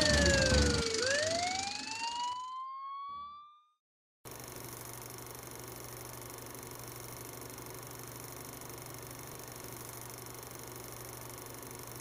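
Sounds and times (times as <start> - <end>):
siren wailing: 0.0 - 3.7.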